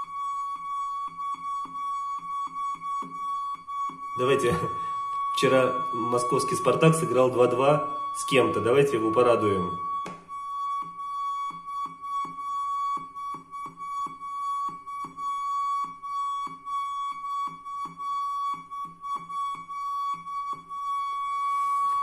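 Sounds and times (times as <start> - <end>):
water hose singing high tone: 4.2 - 9.9.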